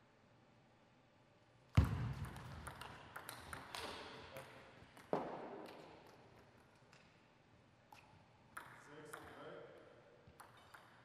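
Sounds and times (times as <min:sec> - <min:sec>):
table tennis ball clicking: 0:02.2 - 0:04.0, 0:08.6 - 0:09.4, 0:10.3 - 0:11.0.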